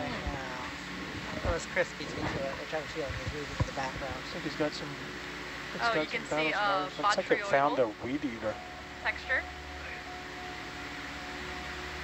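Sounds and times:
background hum and hiss: 0:00.0 - 0:12.0
faint thin whine: 0:00.0 - 0:12.0.

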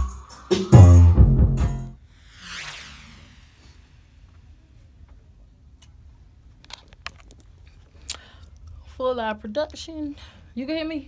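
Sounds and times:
soft swish: 0:02.1 - 0:04.9.

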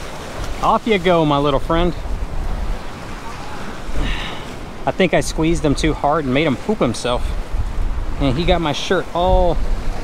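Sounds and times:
waves washing against rocks: 0:00.0 - 0:10.0
wind rumbling on microphone: 0:01.4 - 0:10.0.

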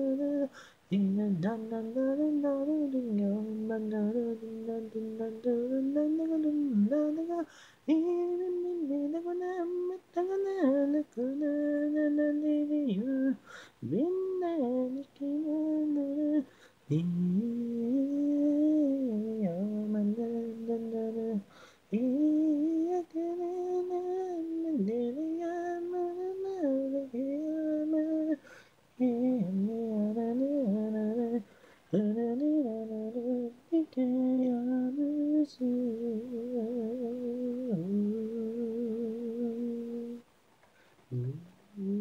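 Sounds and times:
man singing unaccompanied: 0:00.0 - 0:40.4, 0:41.1 - 0:42.0
breath: 0:00.5 - 0:00.8, 0:07.5 - 0:07.8, 0:13.4 - 0:13.8, 0:16.5 - 0:16.8, 0:21.5 - 0:21.8, 0:28.4 - 0:28.8, 0:31.5 - 0:31.9, 0:40.7 - 0:41.0.

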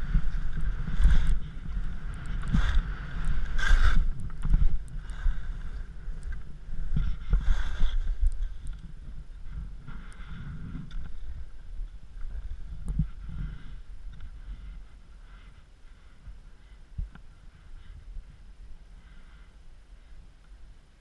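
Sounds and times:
skis scraping over snow: 0:00.0 - 0:08.6
wind rumbling on microphone: 0:00.0 - 0:21.0.

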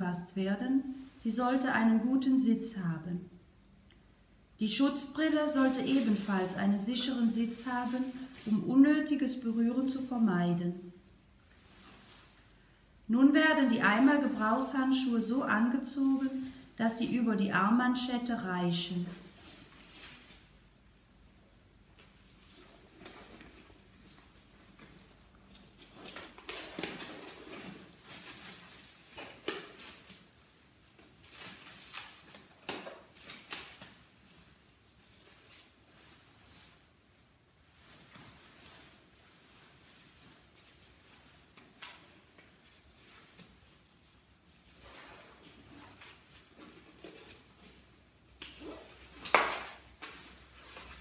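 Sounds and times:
protective coverall rustling: 0:05.2 - 0:10.2, 0:11.4 - 0:12.6, 0:18.7 - 0:51.0.

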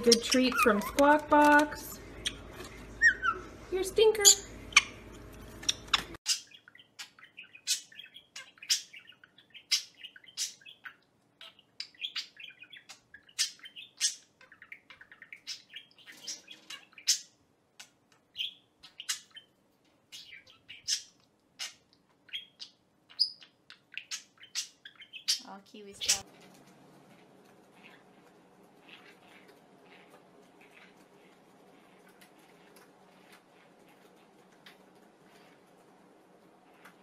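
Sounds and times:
budgerigar chirping: 0:05.6 - 0:17.4, 0:18.3 - 0:19.5, 0:20.1 - 0:26.2.

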